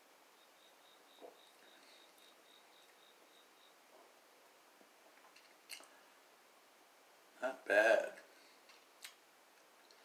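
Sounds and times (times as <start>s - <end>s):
faint high-pitched chirp: 0.3s - 3.8s.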